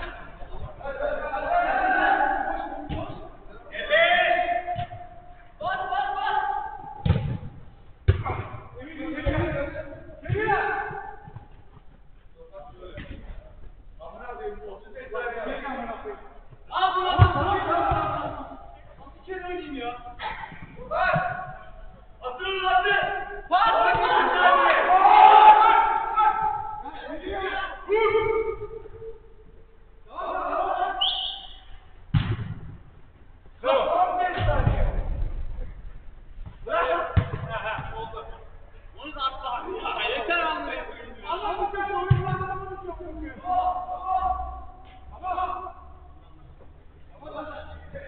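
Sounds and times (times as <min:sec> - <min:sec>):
faint shouts of players: 0:00.0 - 0:07.0, 0:16.7 - 0:18.8, 0:20.0 - 0:29.2, 0:30.0 - 0:31.8, 0:41.3 - 0:46.2
football being kicked: 0:07.0 - 0:08.6, 0:32.1 - 0:32.8, 0:37.2 - 0:37.9, 0:42.1 - 0:42.5.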